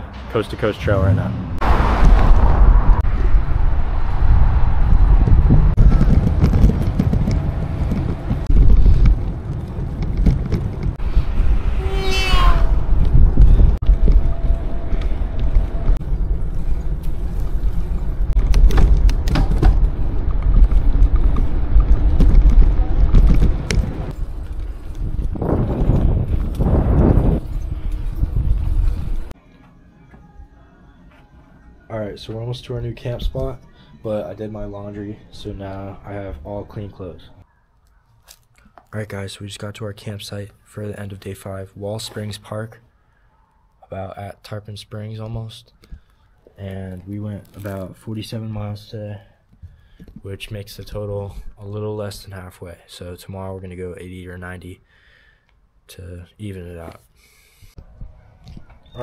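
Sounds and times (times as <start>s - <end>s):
wind buffeting microphone: 1.6s - 29.4s.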